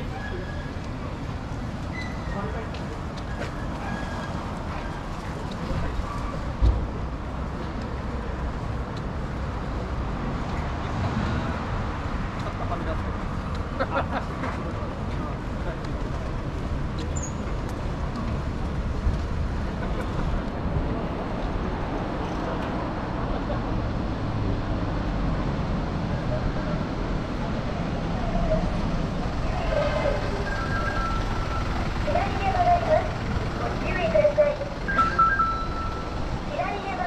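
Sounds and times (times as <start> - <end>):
road traffic rumble: 0.0 - 37.0
people's voices: 26.1 - 37.0.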